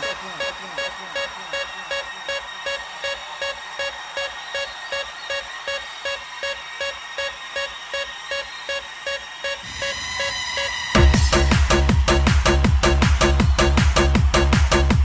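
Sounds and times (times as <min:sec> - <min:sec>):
bass: 0:10.9 - 0:15.0.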